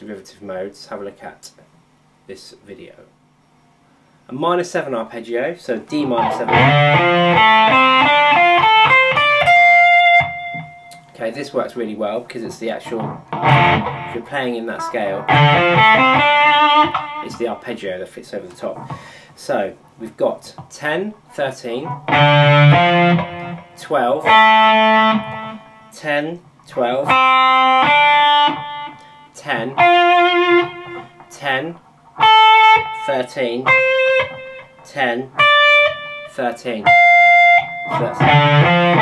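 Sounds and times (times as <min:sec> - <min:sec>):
electric guitar arpeggio: 0:06.0 - 0:11.0, 0:12.9 - 0:17.5, 0:21.9 - 0:26.0, 0:27.0 - 0:31.3, 0:32.2 - 0:34.8, 0:35.4 - 0:39.0.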